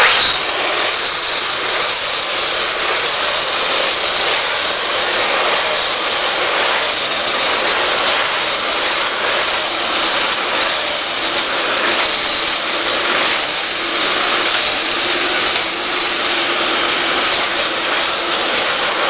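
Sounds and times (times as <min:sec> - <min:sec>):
lawn edger whining: 0:00.0 - 0:19.0.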